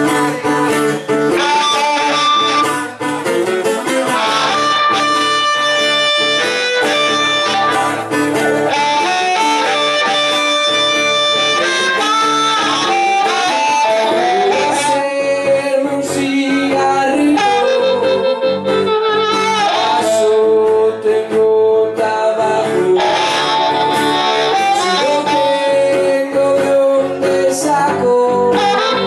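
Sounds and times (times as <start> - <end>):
harmonica long held notes: 0.0 - 15.6, 17.1 - 20.5, 23.0 - 25.9, 28.5 - 29.0
acoustic guitar strumming: 0.0 - 29.0.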